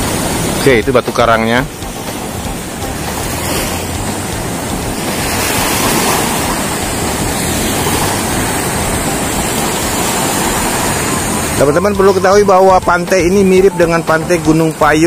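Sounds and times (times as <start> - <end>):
surf washing onto shore: 0.0 - 15.0.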